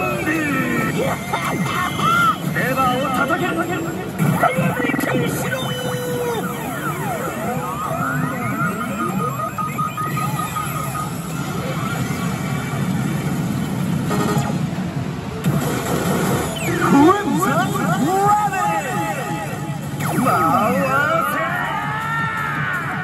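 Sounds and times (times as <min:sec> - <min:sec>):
electronic game music and jingles: 0:00.0 - 0:14.8, 0:15.5 - 0:23.0.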